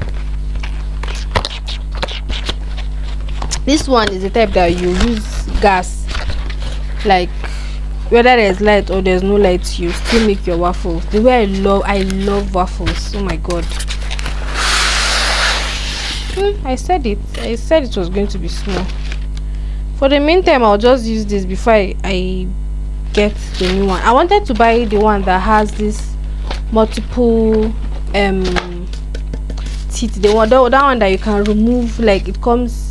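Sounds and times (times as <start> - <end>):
steady low hum: 0.0 - 32.9.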